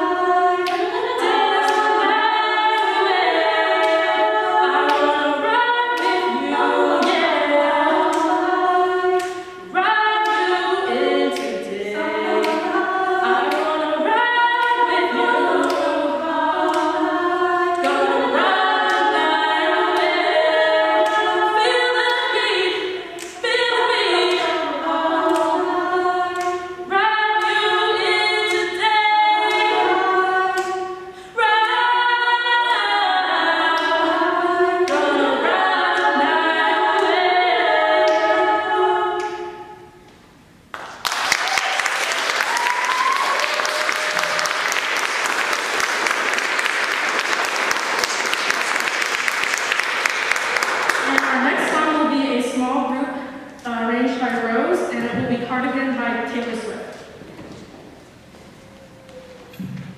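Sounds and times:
women singing in close harmony: 0:00.0 - 0:40.1.

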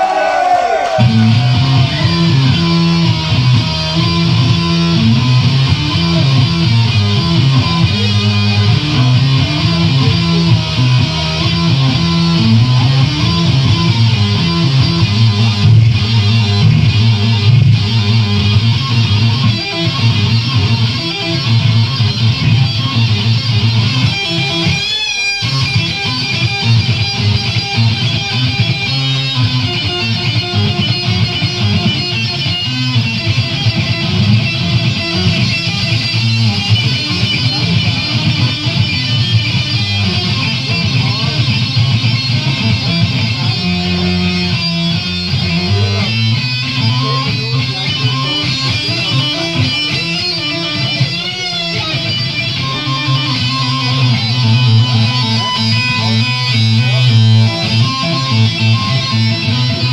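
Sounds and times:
distorted electric guitar: 0:00.0 - 0:59.9
bass guitar: 0:00.3 - 0:59.9.

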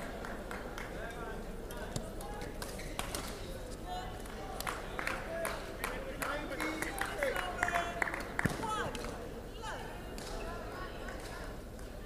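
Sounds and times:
murmur of voices: 0:00.0 - 0:12.0
sports shoes squeaking: 0:02.7 - 0:03.6.

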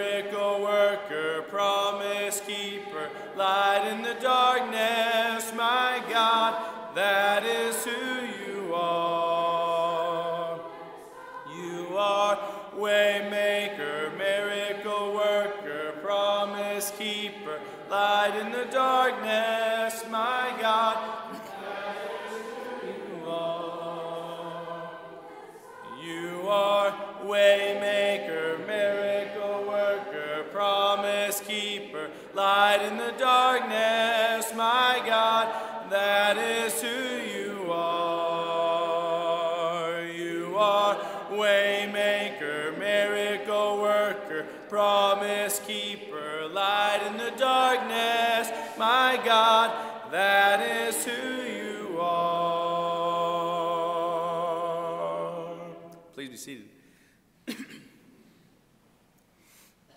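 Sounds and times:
congregation singing a hymn: 0:00.0 - 0:56.6.

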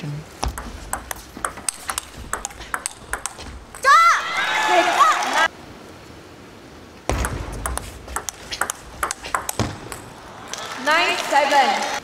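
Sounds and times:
table tennis ball clicks: 0:00.4 - 0:03.9, 0:07.1 - 0:10.1.

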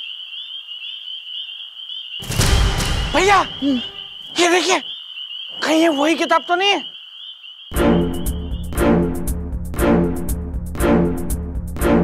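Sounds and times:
chorus of trilling frogs: 0:00.0 - 0:02.4, 0:03.7 - 0:08.6.

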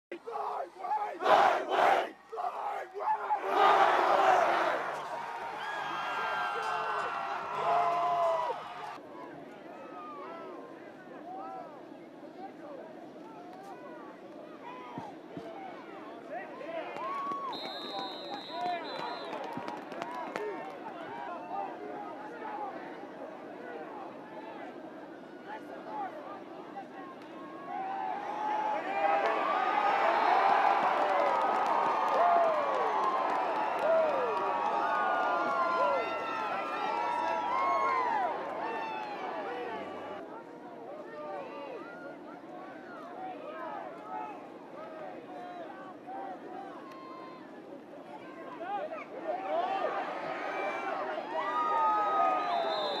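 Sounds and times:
crowd shouting and cheering: 0:00.1 - 0:11.9, 0:12.5 - 0:53.0
group of players yelling: 0:00.2 - 0:05.0
referee's whistle: 0:17.4 - 0:19.5, 0:52.1 - 0:53.0.

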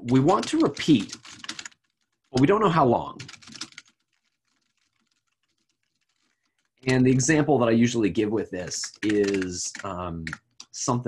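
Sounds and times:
computer keyboard typing: 0:00.0 - 0:07.2, 0:08.6 - 0:10.8.

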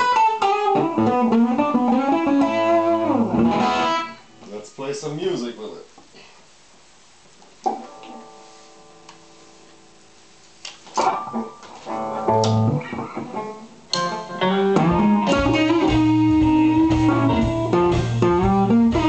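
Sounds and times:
electric guitar chord ringing: 0:00.0 - 0:04.4, 0:11.1 - 0:19.0
electric guitar riff: 0:00.0 - 0:04.5, 0:10.9 - 0:19.0.

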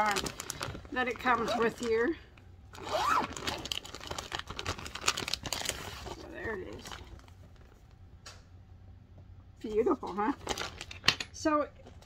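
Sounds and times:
plastic bag crinkling: 0:00.0 - 0:08.0, 0:09.7 - 0:11.1.

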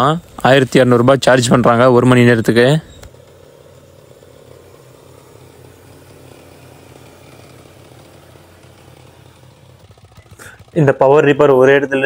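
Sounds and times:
diesel engine running under load: 0:00.0 - 0:12.0.

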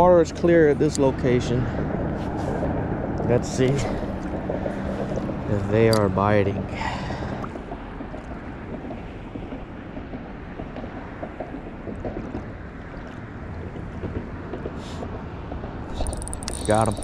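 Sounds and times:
wind buffeting microphone: 0:00.0 - 0:17.0
faint ticks: 0:15.9 - 0:17.0.

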